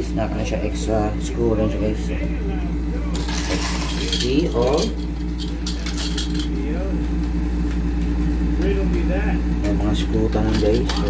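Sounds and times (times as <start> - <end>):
faint voices: 0.0 - 7.2.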